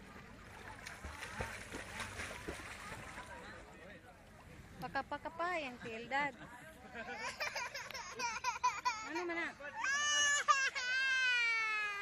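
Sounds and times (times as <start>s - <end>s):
toddler crying: 9.8s - 12.0s.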